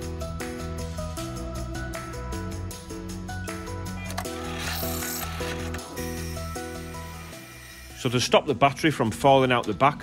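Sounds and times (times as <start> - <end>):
background music: 0.0 - 10.0
band saw cutting steel: 4.2 - 8.6.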